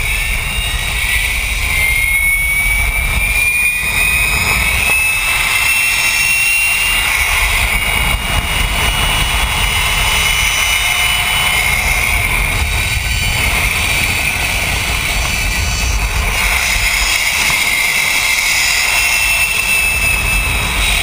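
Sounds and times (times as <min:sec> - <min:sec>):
pulley wheels whining on cable: 0:00.0 - 0:21.0
wind on microphone: 0:00.0 - 0:21.0.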